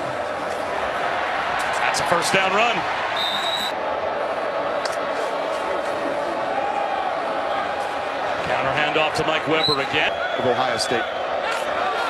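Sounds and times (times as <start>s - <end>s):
stadium crowd noise: 0.0s - 12.0s
referee's whistle blast: 3.2s - 3.7s.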